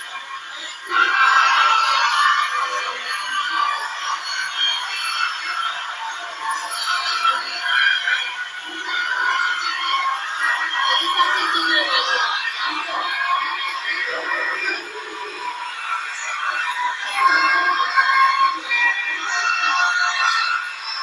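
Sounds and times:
overlapping anthems from small loudspeakers: 0.0 - 21.0.

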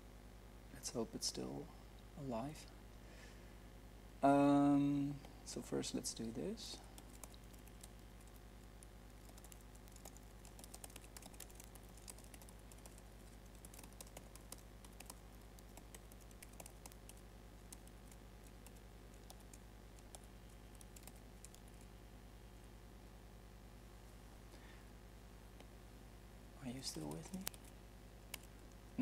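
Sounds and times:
steady low hum: 0.0 - 29.0
typing on computer keyboard: 7.0 - 8.4, 9.2 - 21.8.

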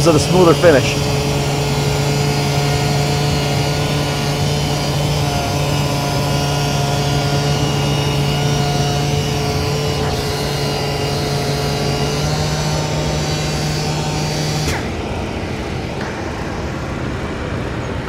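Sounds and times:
sander humming: 0.0 - 18.0.

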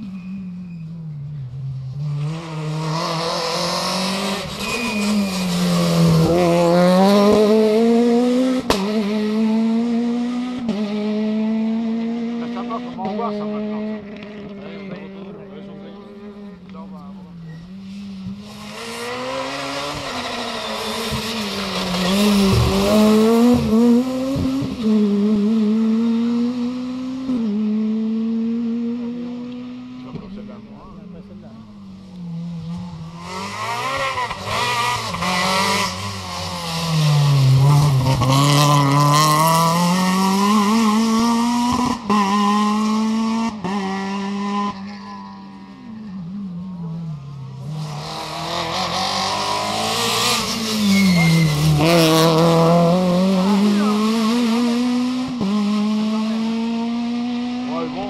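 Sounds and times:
rally cars passing: 0.0 - 58.0
engine revving through gear changes: 18.5 - 30.6, 47.6 - 58.0.

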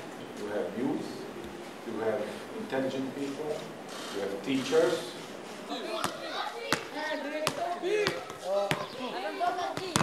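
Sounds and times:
young players shouting and chatting: 0.3 - 10.0
ball striking hard court: 6.0 - 8.9, 9.7 - 10.0.

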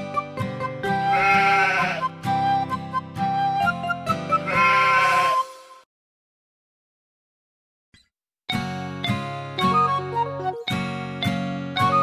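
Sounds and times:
children's song music: 0.0 - 5.9, 8.5 - 12.0
sheep bleating: 1.0 - 2.1, 4.4 - 5.5.

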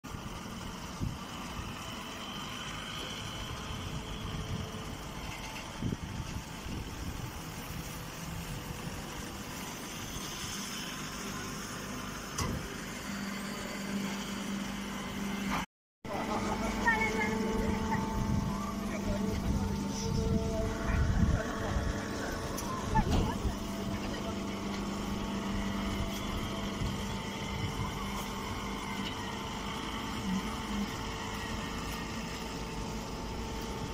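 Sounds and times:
baling machinery running: 0.1 - 33.9
steady low hum: 0.1 - 33.9.

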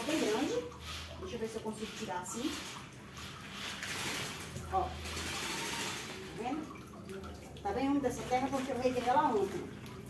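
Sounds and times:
soil and roots rustling: 0.0 - 10.0.

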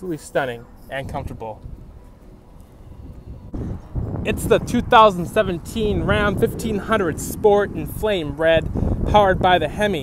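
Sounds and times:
wind on microphone: 0.6 - 10.0
low background rumble: 1.4 - 10.0.

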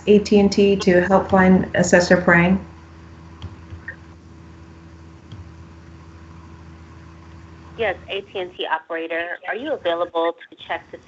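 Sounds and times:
faint audio line hiss: 0.0 - 11.0
low electrical hum: 0.0 - 11.0.

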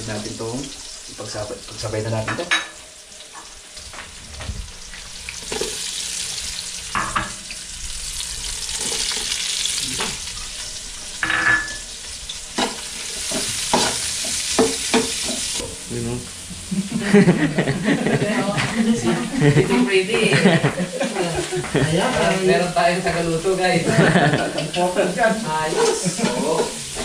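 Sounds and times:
aromatics sizzling in hot oil: 0.0 - 27.0.

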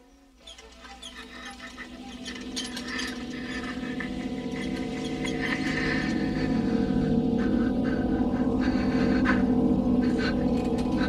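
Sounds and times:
dense crackling and clicking: 0.3 - 6.5
low drone: 0.4 - 11.0.

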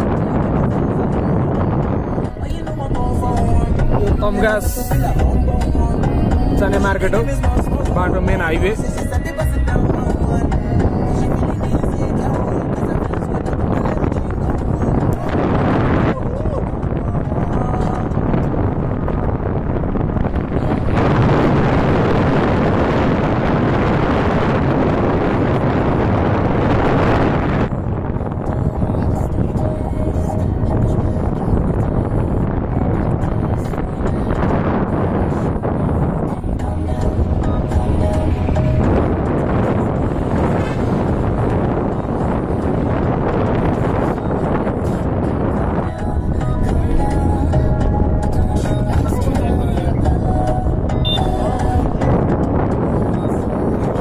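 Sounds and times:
vehicle running noise: 0.0 - 54.0
wind buffeting microphone: 0.0 - 54.0.

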